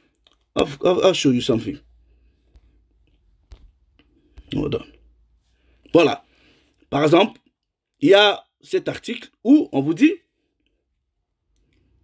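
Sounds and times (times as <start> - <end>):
man speaking: 0.5 - 1.9, 4.4 - 5.1, 5.9 - 6.3, 6.9 - 7.4, 8.0 - 10.3.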